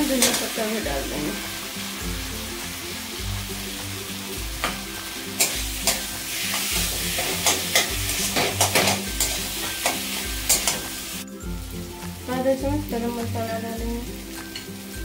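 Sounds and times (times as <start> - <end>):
faint sizzle: 0.0 - 15.0
metal spatula scraping a pan: 5.4 - 11.2.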